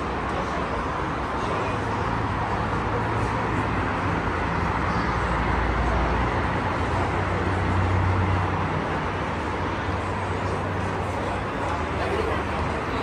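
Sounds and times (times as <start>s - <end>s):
dense highway traffic rumble: 0.0s - 13.0s.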